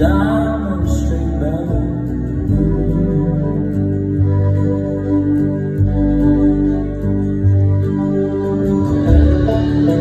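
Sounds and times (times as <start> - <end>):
band and orchestra playing chords: 0.0 - 10.0.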